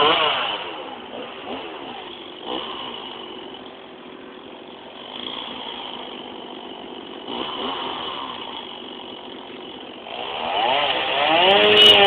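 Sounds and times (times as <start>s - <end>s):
chainsaw engine revving: 0.0s - 12.0s.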